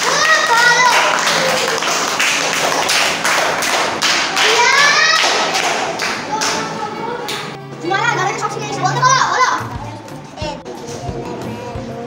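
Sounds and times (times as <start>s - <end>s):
children clapping in rhythm: 0.0s - 7.6s.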